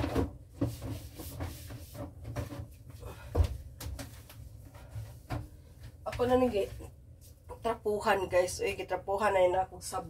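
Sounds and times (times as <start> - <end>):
knocks and clatters in refrigerator: 0.0 - 4.2.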